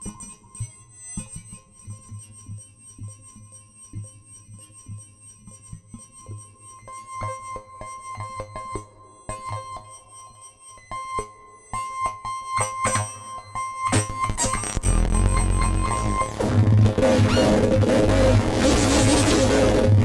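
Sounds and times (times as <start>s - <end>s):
clicking stacked electronic tones: 13.9s - 20.0s
low synthesizer pulse: 14.0s - 20.0s
steady high synth tones: 14.0s - 20.0s.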